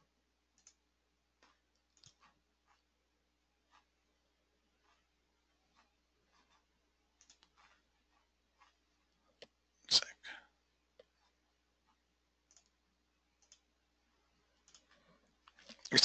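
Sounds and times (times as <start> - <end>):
computer mouse clicks: 0.5 - 0.8, 1.4 - 2.8, 7.2 - 9.6, 11.9 - 12.8, 13.4 - 13.7, 14.5 - 16.0.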